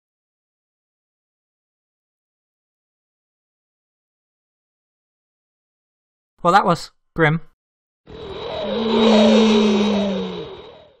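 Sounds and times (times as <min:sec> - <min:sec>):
cartoon whoosh: 0:08.1 - 0:11.0.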